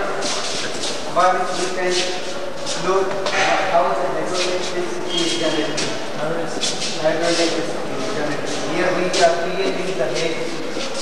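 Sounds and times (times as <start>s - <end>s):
men talking indistinctly: 0.0s - 11.0s.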